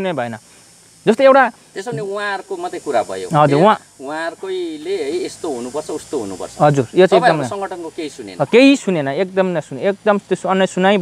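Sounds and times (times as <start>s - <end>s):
man talking: 1.1s - 11.0s.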